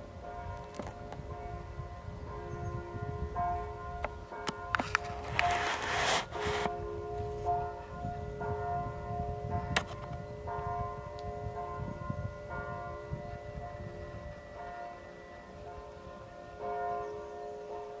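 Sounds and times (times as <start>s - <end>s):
church bells ringing: 0.0s - 18.0s.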